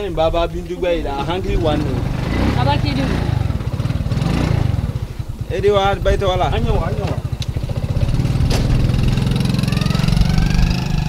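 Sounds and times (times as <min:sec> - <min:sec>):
people talking: 0:00.0 - 0:03.3, 0:05.5 - 0:07.2
engine running with low pulsing: 0:00.0 - 0:11.0.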